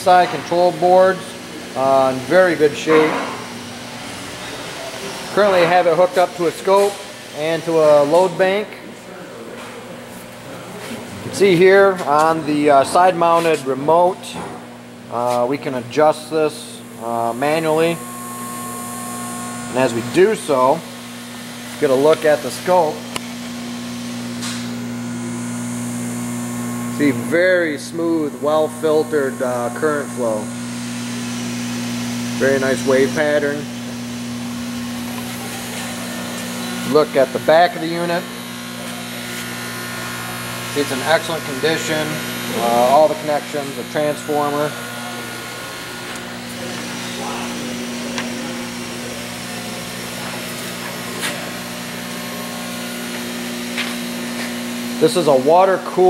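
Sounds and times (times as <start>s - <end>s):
electrical hum: 0.0s - 56.0s.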